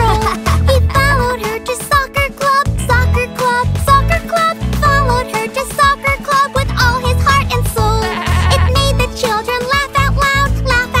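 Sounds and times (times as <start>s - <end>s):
bouncy children's music: 0.0s - 11.0s
cartoon lamb bleating: 7.9s - 8.9s.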